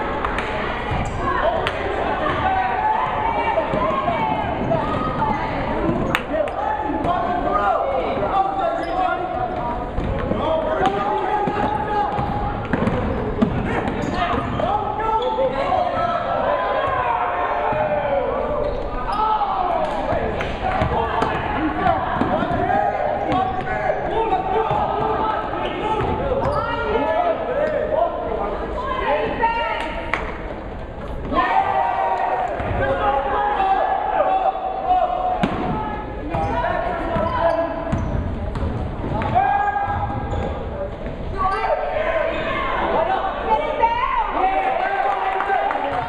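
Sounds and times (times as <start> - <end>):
din of crowd and voices: 0.0 - 46.0.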